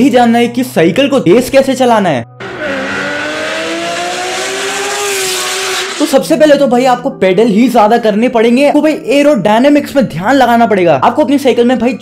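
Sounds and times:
engine drone rising in pitch: 2.4 - 6.2.

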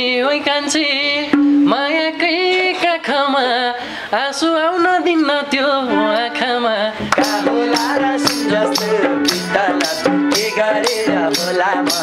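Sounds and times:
man singing folk song: 0.0 - 12.0
drum strokes: 7.0 - 12.0.

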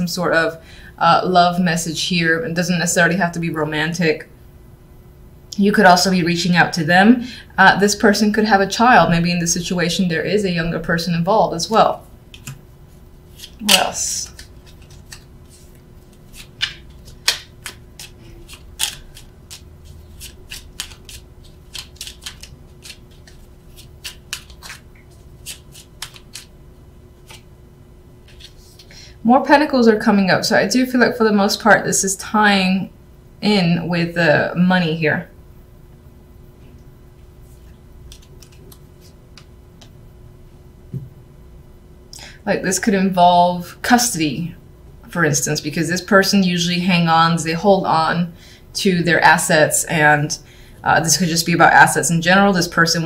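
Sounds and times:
cards being shuffled: 12.3 - 12.6, 13.3 - 26.5, 27.2 - 27.5, 28.2 - 28.9, 37.4 - 39.5.

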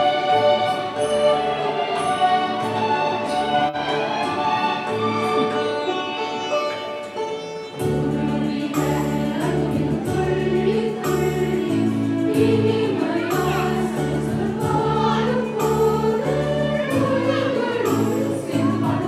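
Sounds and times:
choir singing a carol: 0.0 - 5.9, 7.7 - 19.0
musical accompaniment with bass: 0.0 - 19.0.

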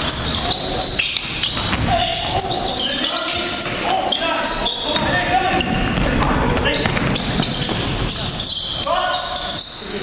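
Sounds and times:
sneakers squeaking on hardwood: 0.0 - 10.0
players' voices: 0.2 - 10.0
basketball bouncing: 5.0 - 8.1.

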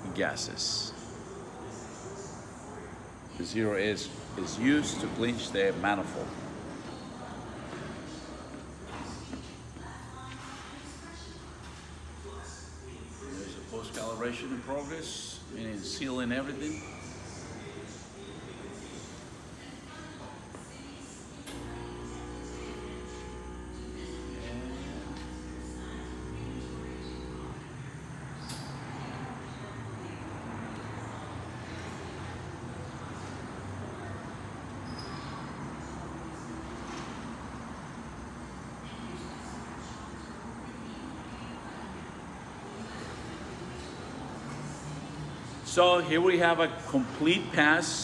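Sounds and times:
multi-pitched machine hum: 21.3 - 41.2.

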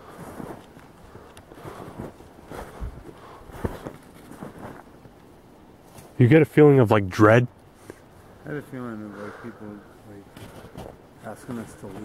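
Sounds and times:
footsteps crunching in snow: 0.0 - 5.0.

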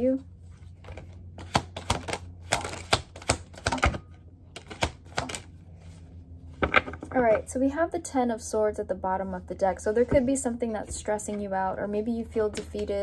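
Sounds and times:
low steady hum: 0.0 - 13.0
cards being shuffled: 0.5 - 4.0, 4.6 - 5.9.

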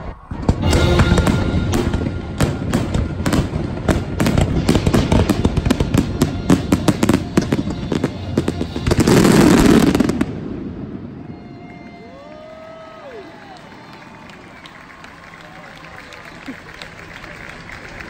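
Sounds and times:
fireworks bursts and crackle: 0.0 - 15.0.

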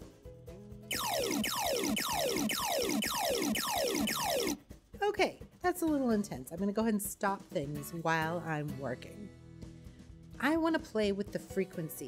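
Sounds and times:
low looping beat: 0.9 - 4.6
square-wave tone sweeping down: 0.9 - 4.6.

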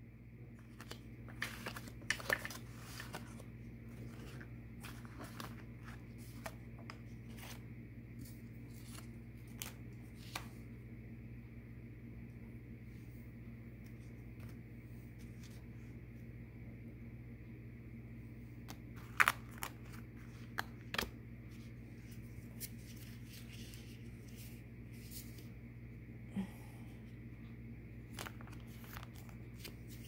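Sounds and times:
steady low hum: 0.0 - 30.0
cards handled on tabletop: 0.6 - 10.6, 18.6 - 25.5, 28.1 - 30.0.

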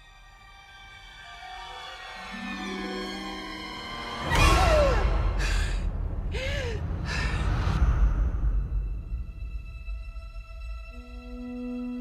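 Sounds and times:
woman breathing hard: 5.0 - 7.8.

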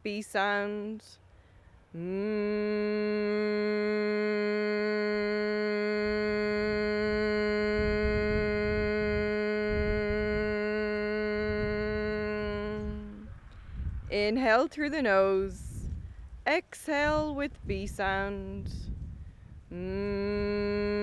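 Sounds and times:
person humming steady note: 2.0 - 13.3, 19.7 - 21.0.

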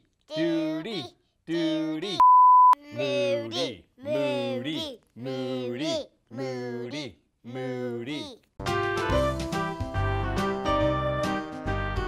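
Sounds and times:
looping vocal phrase: 0.3 - 2.2, 2.8 - 8.4.

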